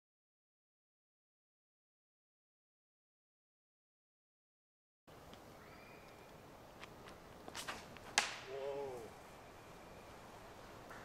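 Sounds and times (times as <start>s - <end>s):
footstep scuffs: 6.8s - 8.4s
sharp whip-like snap: 7.6s - 8.6s.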